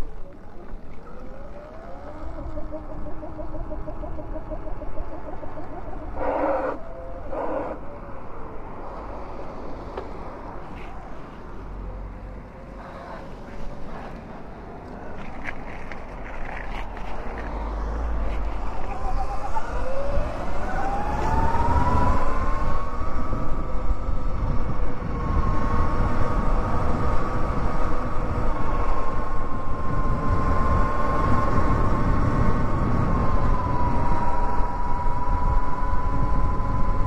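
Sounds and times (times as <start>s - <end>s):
wind rumble on microphone: 0.0s - 37.0s
electric motorbike motor whining: 0.1s - 8.3s, 17.6s - 37.0s.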